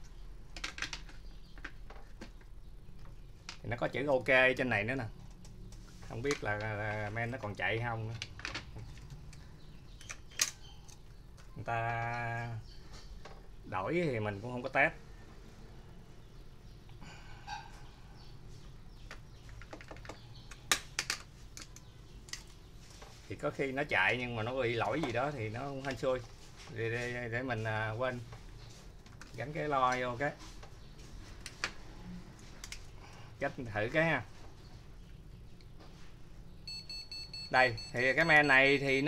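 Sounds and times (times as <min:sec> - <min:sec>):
rapid high-pitched beeping: 0:36.7 - 0:39.0.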